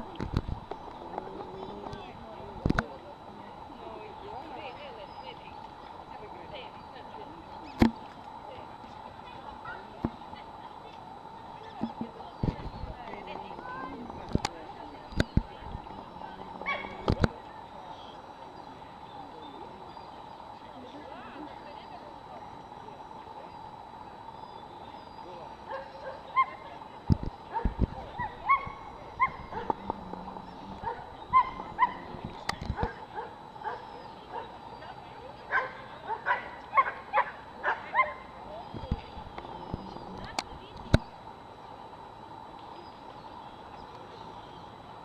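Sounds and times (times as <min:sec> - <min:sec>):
dog barking: 0:16.6 - 0:17.0, 0:27.5 - 0:29.8, 0:30.8 - 0:32.1, 0:32.8 - 0:34.5, 0:35.5 - 0:38.2.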